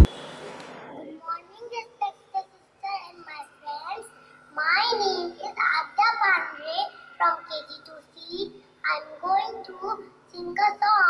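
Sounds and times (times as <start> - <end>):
girl speaking into a microphone: 0.9 - 11.0.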